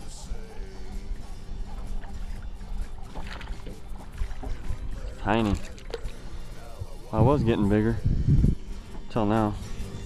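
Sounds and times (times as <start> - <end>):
background music: 0.0 - 10.0
steady low rumble: 0.0 - 10.0.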